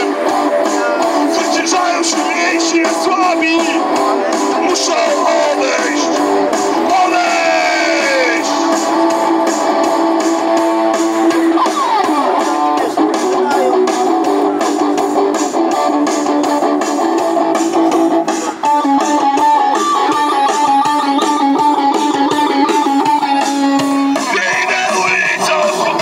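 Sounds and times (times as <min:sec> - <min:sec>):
electric guitar strumming: 0:00.0 - 0:26.0.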